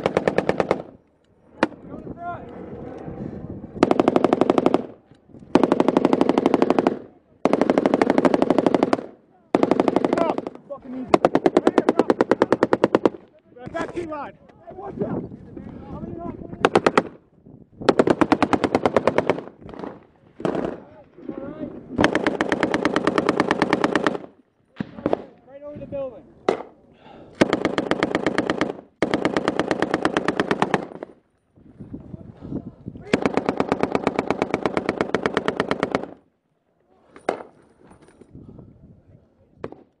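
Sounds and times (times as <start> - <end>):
machine gun firing bursts: 0.0 - 0.9, 3.8 - 10.5, 11.1 - 13.2, 17.9 - 20.9, 22.0 - 24.4, 27.4 - 31.2, 33.1 - 36.2.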